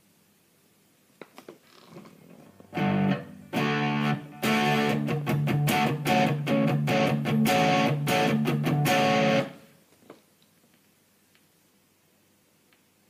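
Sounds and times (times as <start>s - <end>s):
electric guitar strummed chords: 2.7s - 9.6s
faint click: 12.7s - 12.9s.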